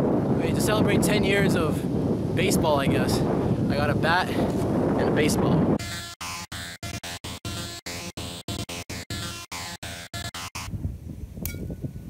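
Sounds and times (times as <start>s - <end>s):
wind buffeting microphone: 0.0s - 5.9s, 10.7s - 12.0s
stuttering music: 5.8s - 10.7s.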